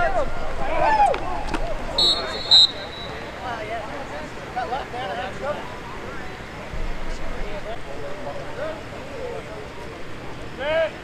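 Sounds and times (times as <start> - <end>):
referee's whistle blasts: 2.0 - 3.6.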